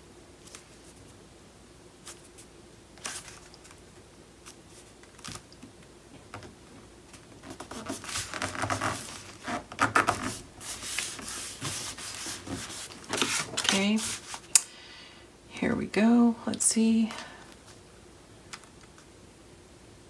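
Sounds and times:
paper sliding and rustling: 0:07.5 - 0:14.5.

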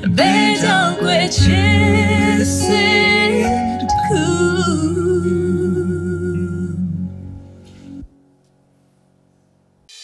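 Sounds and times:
man and woman singing duet: 0:00.0 - 0:07.2
acoustic guitar: 0:00.0 - 0:08.2.

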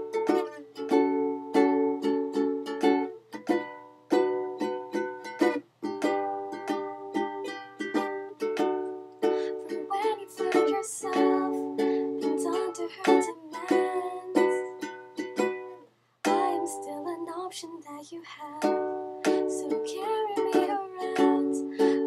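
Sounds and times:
ukulele strumming chords: 0:00.0 - 0:17.8, 0:18.4 - 0:22.0.

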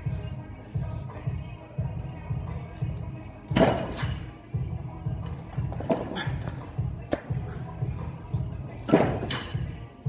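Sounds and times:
music with bass beat: 0:00.0 - 0:03.8, 0:04.5 - 0:10.0.

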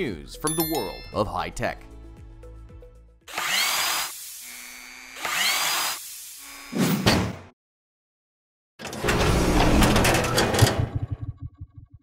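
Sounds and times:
drill-like mechanical whirs: 0:03.3 - 0:06.8.

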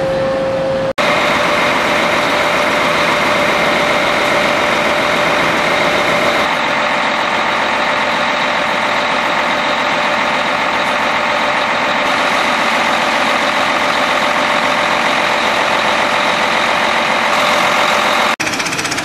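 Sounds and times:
tractor engine and drivetrain noise: 0:00.0 - 0:19.0.

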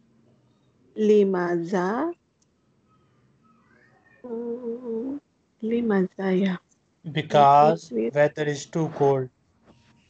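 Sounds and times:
person humming mmm: 0:07.1 - 0:09.3.

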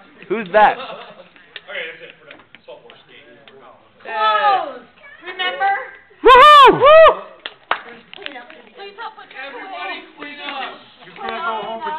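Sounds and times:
loud whoop: 0:06.2 - 0:07.4
hand claps: 0:07.4 - 0:08.6.

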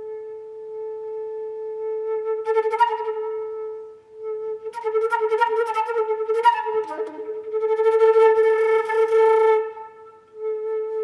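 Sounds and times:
flute holding a long note: 0:00.0 - 0:11.0.

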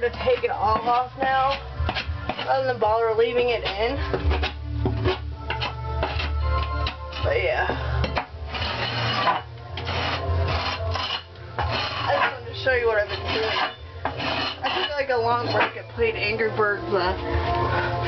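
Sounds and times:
hand scraper rasping ceiling texture: 0:08.5 - 0:15.8.

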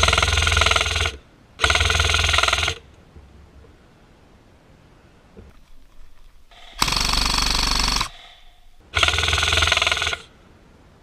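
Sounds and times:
airsoft rifle full-auto bursts: 0:00.0 - 0:02.8, 0:06.5 - 0:10.3.

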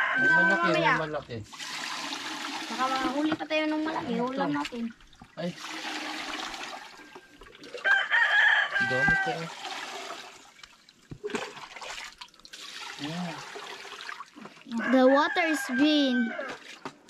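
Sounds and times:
rooster crowing: 0:00.0 - 0:01.0, 0:06.8 - 0:09.5, 0:14.7 - 0:16.6
water splashing and pouring: 0:00.4 - 0:14.9, 0:16.3 - 0:17.0.

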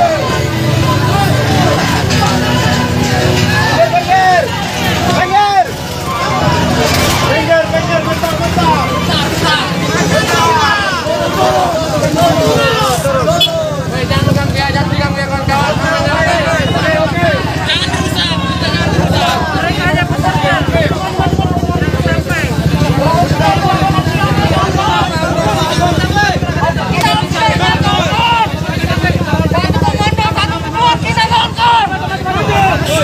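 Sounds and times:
crowd shouting and talking: 0:00.0 - 0:33.0.

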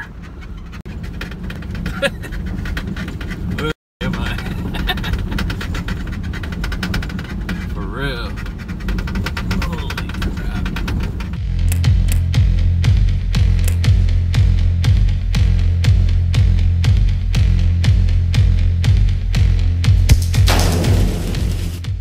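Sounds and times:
gravel clicking under wheels: 0:00.0 - 0:11.4
truck engine and tyres rumbling: 0:00.0 - 0:22.0.

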